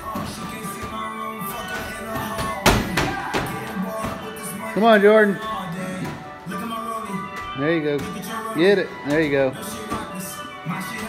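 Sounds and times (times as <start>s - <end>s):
background music: 0.0s - 11.0s
medicine ball thud: 2.1s - 4.5s.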